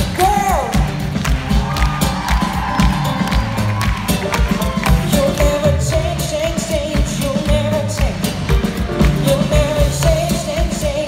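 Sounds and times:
audience cheering: 0.0 - 5.3
live pop-soul band playing: 0.0 - 11.0
woman singing: 4.8 - 8.4, 9.0 - 11.0.

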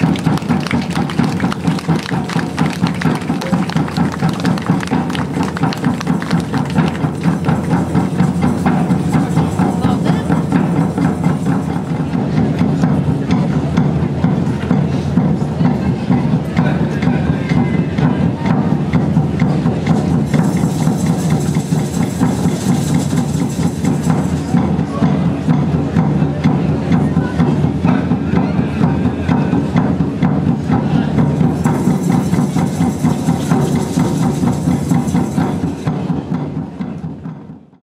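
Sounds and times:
hand drums beating: 0.0 - 37.7.

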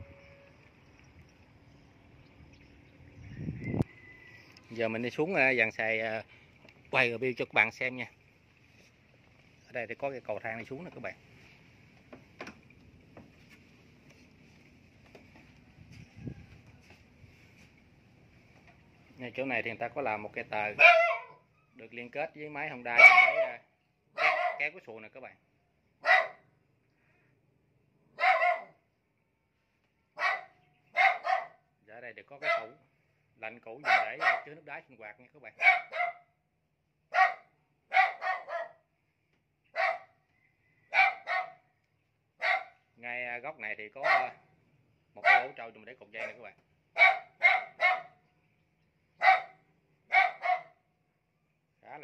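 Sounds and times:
dog barking: 20.8 - 21.4, 22.9 - 24.7, 26.0 - 26.5, 28.2 - 28.8, 30.2 - 31.6, 32.4 - 32.8, 33.8 - 34.6, 35.6 - 36.3, 37.1 - 38.9, 39.7 - 40.2, 40.9 - 41.7, 42.4 - 42.8, 44.0 - 44.4, 45.2 - 45.6, 46.2 - 48.2, 49.2 - 50.8.

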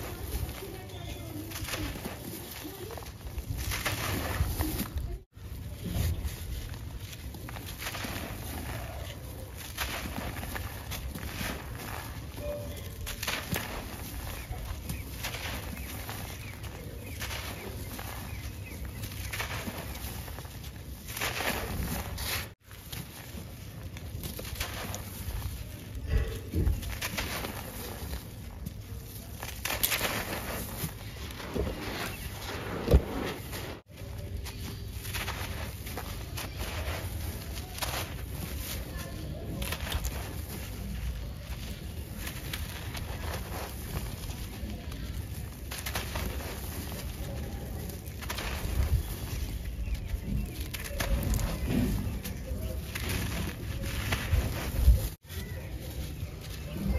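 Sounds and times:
gritty crunching of crumbling cement: 0.0 - 56.9.

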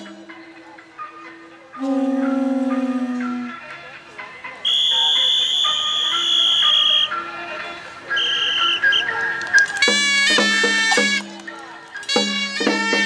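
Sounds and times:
sustained instrument notes: 0.0 - 4.8
low horn tone: 1.7 - 3.6
shrill high whistle: 4.6 - 7.2, 8.1 - 9.8.

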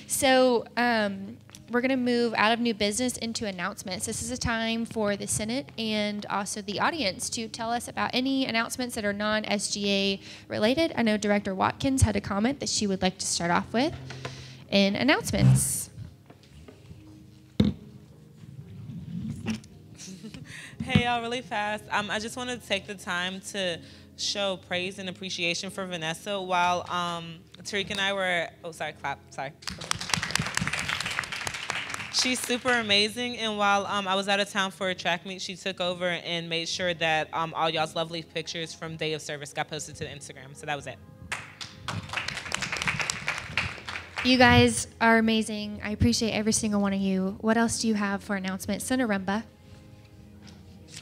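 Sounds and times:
people applauding: 29.6 - 32.9, 41.3 - 44.4.

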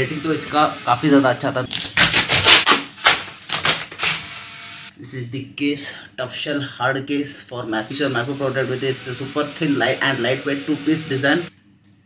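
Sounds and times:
cardboard being torn open: 1.7 - 4.3.

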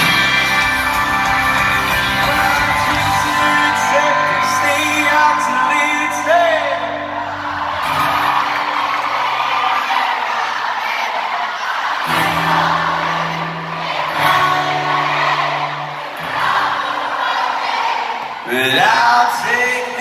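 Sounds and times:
live pop-rock band playing: 0.0 - 9.6, 12.1 - 17.5
crowd cheering: 0.0 - 20.0.

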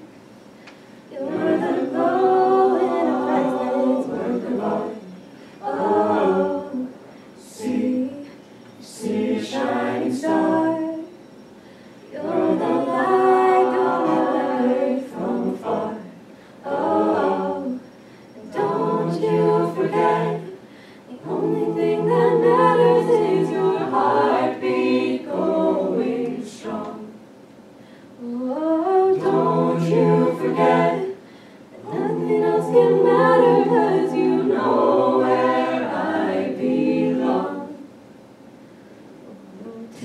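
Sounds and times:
a cappella group singing in harmony: 0.8 - 27.4, 28.1 - 38.1, 39.3 - 40.0.

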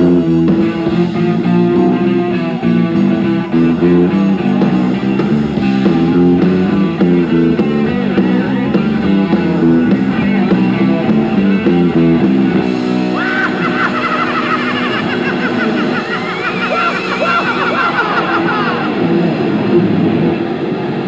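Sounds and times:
guitar lead with vibrato: 0.0 - 19.7
distorted electric guitar riff: 0.0 - 21.0.

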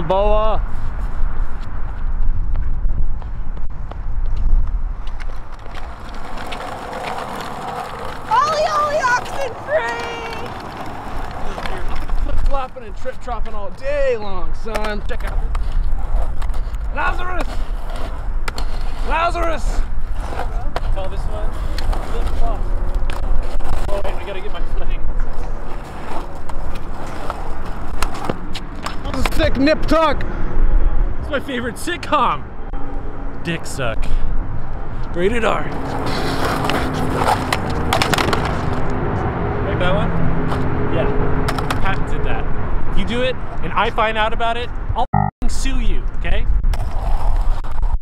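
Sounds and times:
scooter wheels rolling on concrete: 3.2 - 30.2, 35.0 - 40.7.

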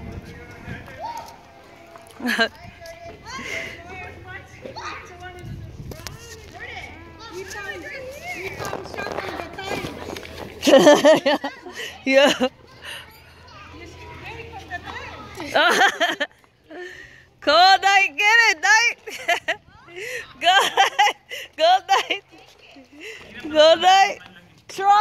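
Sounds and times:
children calling and shouting: 0.5 - 25.0
children laughing: 2.1 - 4.0, 9.1 - 14.0, 14.8 - 17.2, 19.0 - 23.4.

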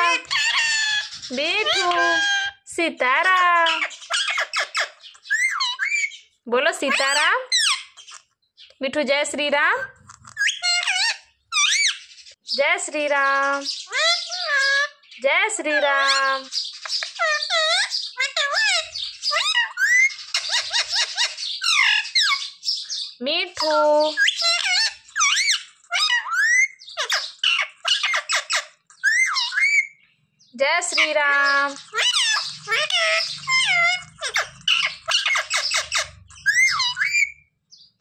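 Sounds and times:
parakeet squeaky calls: 0.0 - 8.7, 9.7 - 12.6, 13.2 - 30.0, 30.9 - 37.9.

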